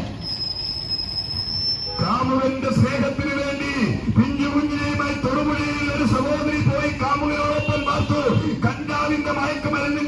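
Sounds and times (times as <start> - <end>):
street traffic hum: 0.0 - 10.0
high-pitched whistle: 0.2 - 2.2.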